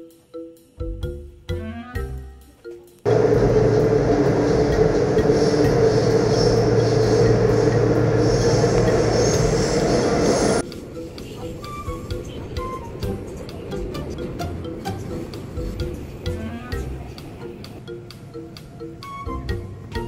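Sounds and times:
light background music: 0:00.0 - 0:03.1, 0:10.6 - 0:20.0
subway train rumbling: 0:03.0 - 0:20.0.

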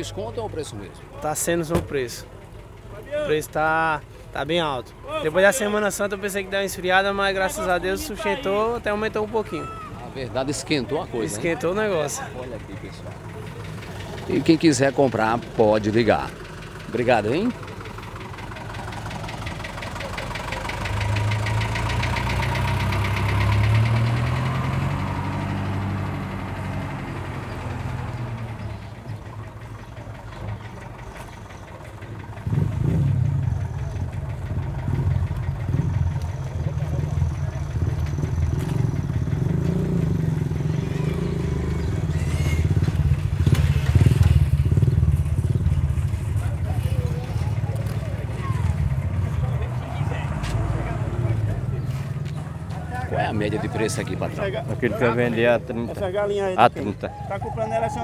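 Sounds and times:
jeep engine running: 0:00.0 - 0:58.0
steady low engine drone: 0:25.0 - 0:56.2.

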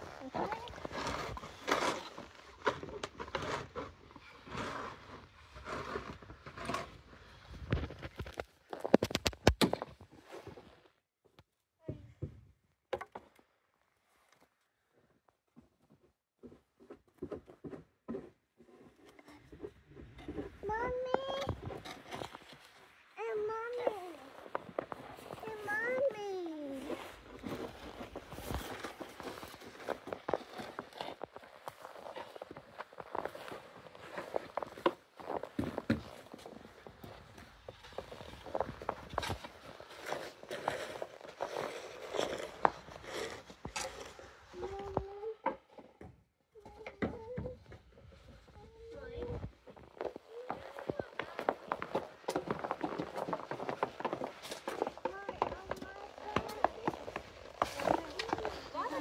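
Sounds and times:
plastic shovel scraping on snow: 0:00.0 - 0:08.2, 0:20.3 - 0:45.2, 0:48.4 - 0:59.0.

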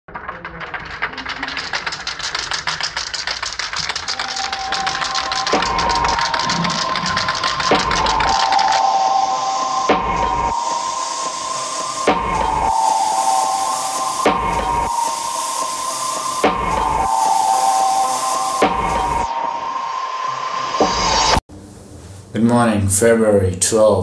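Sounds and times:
fast rattle: 0:00.6 - 0:08.4
music with low beat: 0:04.1 - 0:19.3
spray-paint can hissing: 0:12.7 - 0:19.2.

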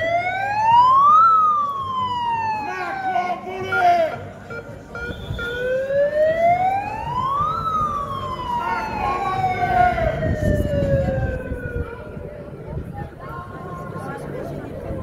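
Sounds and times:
marching crowd voices: 0:00.0 - 0:15.0.

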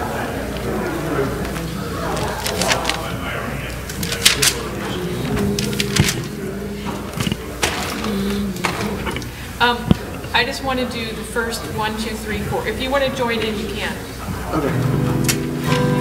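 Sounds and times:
indistinct low voices talking: 0:00.0 - 0:16.0.

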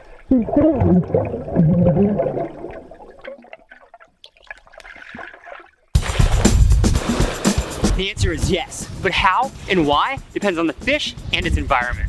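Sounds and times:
music: 0:06.0 - 0:12.0.

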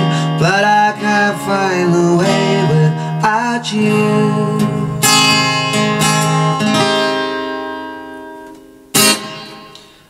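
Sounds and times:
acoustic guitar strummed chord: 0:00.0 - 0:10.0.

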